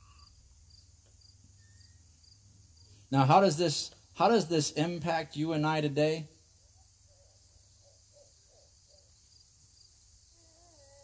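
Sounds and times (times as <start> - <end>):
faint crickets chirping: 0.0 - 11.0.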